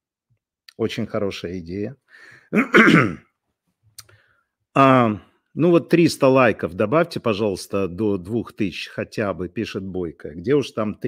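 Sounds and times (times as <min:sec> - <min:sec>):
short breath: 0:02.1 - 0:02.6, 0:04.0 - 0:04.6
man clearing throat: 0:02.6 - 0:03.3.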